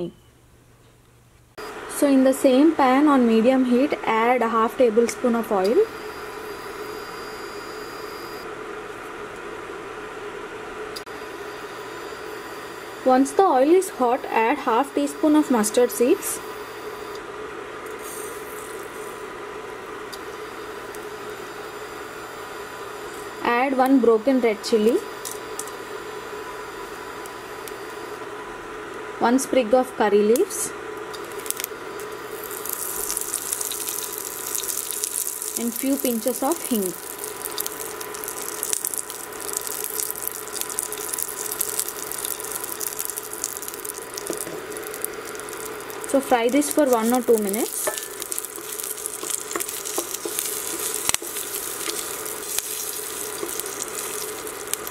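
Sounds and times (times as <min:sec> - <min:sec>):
seeds sizzling in hot oil: 0:05.6 - 0:08.5, 0:18.0 - 0:19.2, 0:31.2 - 0:54.9.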